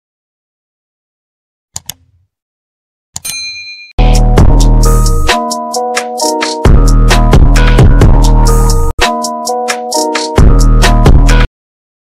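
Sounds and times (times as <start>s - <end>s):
click: 1.8s - 2.2s
bell-like ding: 3.2s - 4.0s.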